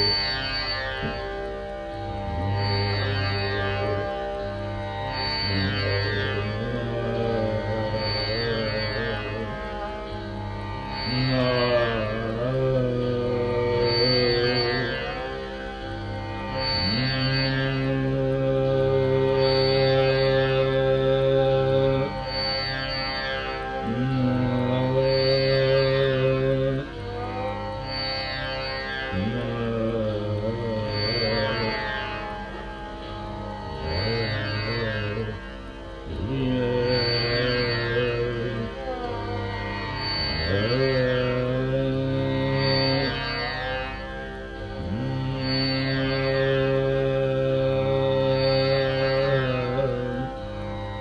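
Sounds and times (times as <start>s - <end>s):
man singing long sliding notes: 0.0s - 51.0s
plucked tanpura drone: 0.0s - 51.0s.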